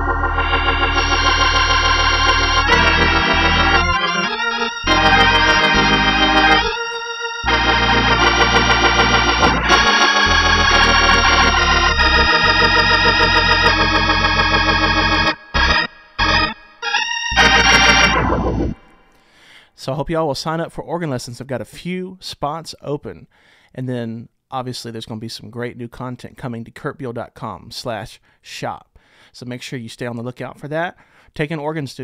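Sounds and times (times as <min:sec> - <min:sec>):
organ bass pedal notes: 0:00.0 - 0:19.0
organ playing chords: 0:00.0 - 0:19.2.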